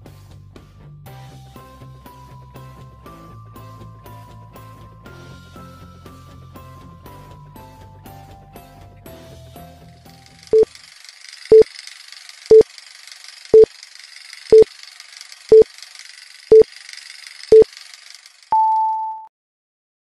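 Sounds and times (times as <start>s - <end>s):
short low beeps: 18.5s - 19.3s.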